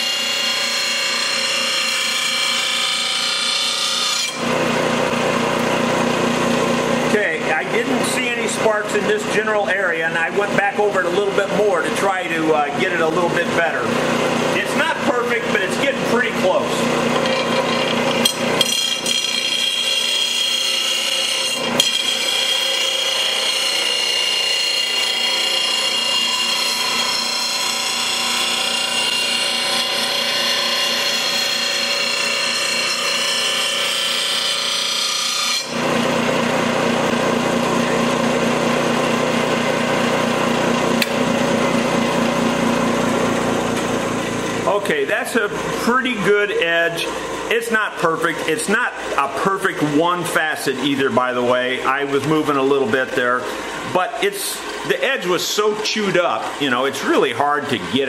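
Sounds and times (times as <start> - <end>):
bench grinder grinding blade: 0.0 - 58.0.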